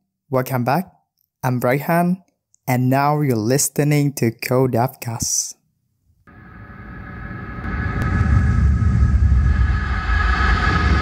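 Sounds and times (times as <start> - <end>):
steady low rumble: 6.3 - 11.0
sustained high hum: 6.3 - 11.0.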